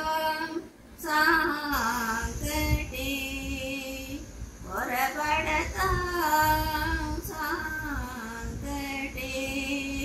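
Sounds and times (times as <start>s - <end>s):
elderly woman singing: 0.0s - 10.0s.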